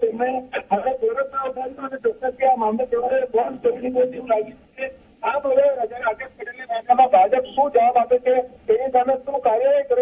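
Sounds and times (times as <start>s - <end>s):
man talking over telephone: 0.0s - 10.0s.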